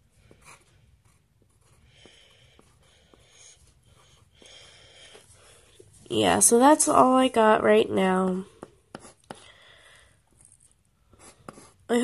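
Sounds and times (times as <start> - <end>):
pencil scratching on paper: 0.1 - 6.4, 8.0 - 9.4, 10.5 - 12.0.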